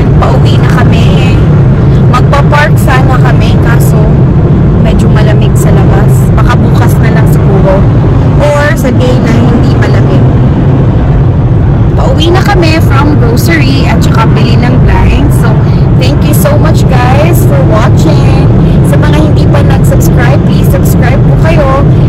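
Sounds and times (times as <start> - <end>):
person talking: 0.0 - 1.4, 2.1 - 4.1, 4.8 - 7.8, 8.4 - 10.3, 12.0 - 21.9
car road and engine noise: 0.0 - 22.0.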